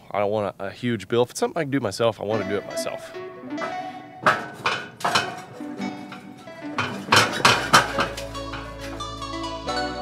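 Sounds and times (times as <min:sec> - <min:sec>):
metal trailer ramps clanking: 0:02.3 - 0:09.8.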